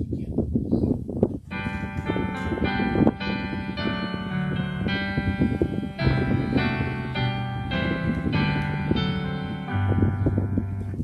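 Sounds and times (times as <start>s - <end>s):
wind rumbling on microphone: 0.0s - 11.0s
bell-like electronic keyboard chord: 1.5s - 11.0s.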